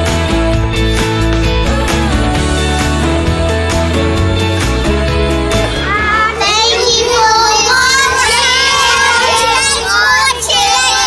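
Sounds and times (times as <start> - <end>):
children singing together: 5.6 - 11.0.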